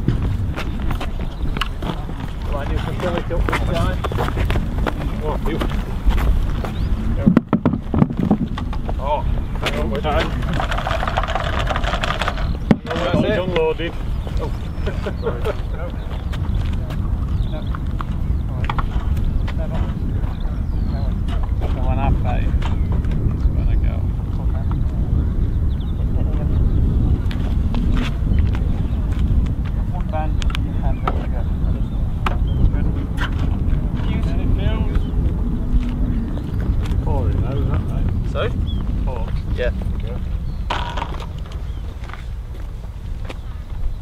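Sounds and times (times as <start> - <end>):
wind rumbling on microphone: 0.0 - 44.0.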